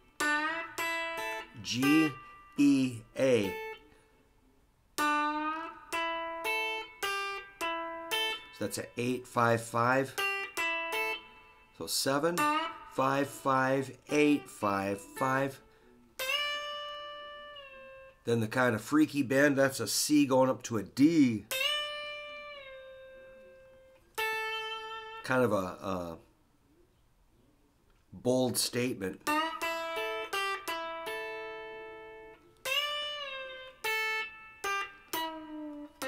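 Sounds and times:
electric guitar picked notes: 0.0 - 4.0, 5.0 - 18.3, 21.4 - 25.8, 29.2 - 36.0.

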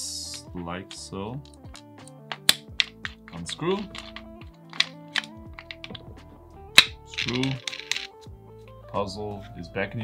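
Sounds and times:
background music: 0.0 - 10.0
small wooden clicks and taps: 1.4 - 6.1, 6.8 - 8.1.

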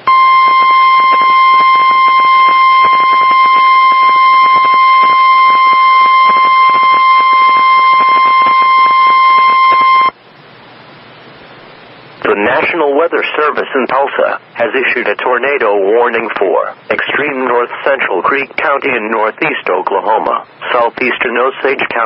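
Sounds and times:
radio static crackling: 0.0 - 10.2, 12.2 - 22.0
steady alarm tone: 0.0 - 10.2.

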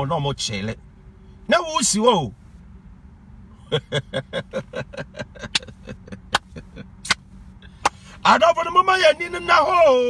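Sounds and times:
car idling inside cabin: 3.4 - 10.0.

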